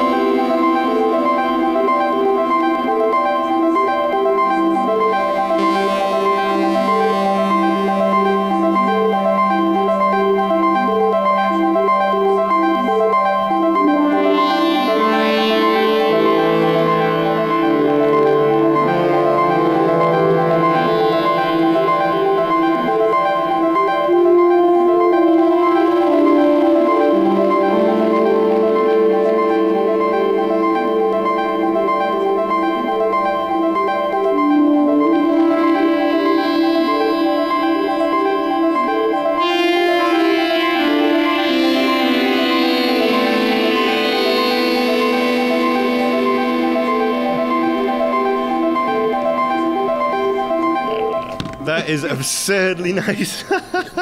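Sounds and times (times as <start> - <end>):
synthesizer melody over sustained tones: 0.0 - 52.7.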